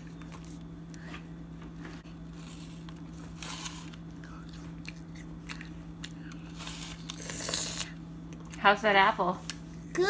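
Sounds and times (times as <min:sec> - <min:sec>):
child crunching apple: 0:02.3 - 0:08.0.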